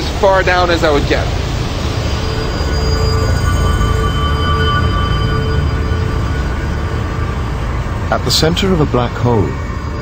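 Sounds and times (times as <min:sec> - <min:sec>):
eerie sustained drone: 0:00.0 - 0:10.0.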